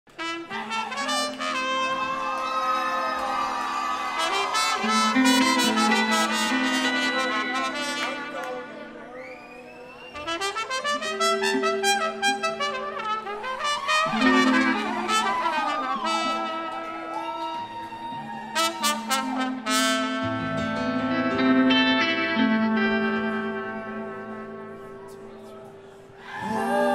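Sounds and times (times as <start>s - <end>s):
trumpet melody: 0.1s - 9.2s, 10.1s - 25.7s.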